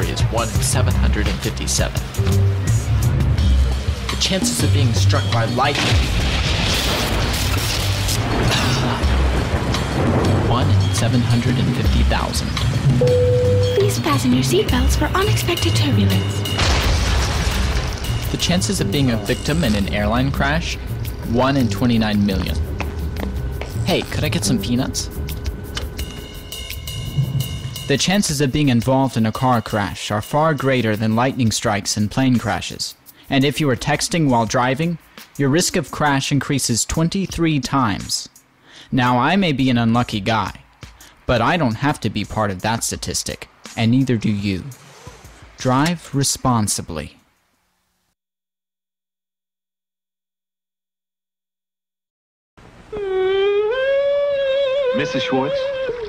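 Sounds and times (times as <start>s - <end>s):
background music: 0.0s - 47.1s, 53.7s - 56.0s
thin high tone: 13.0s - 14.2s.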